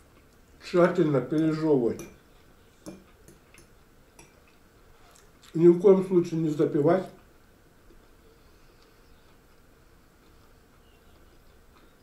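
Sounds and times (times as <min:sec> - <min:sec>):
faint eating sounds: 0:00.0 - 0:12.0.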